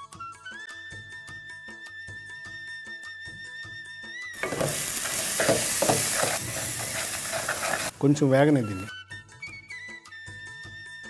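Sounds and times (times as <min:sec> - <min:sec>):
spatula scraping metal pan: 0:04.4 - 0:08.0
onions sizzling in oil: 0:04.4 - 0:08.9.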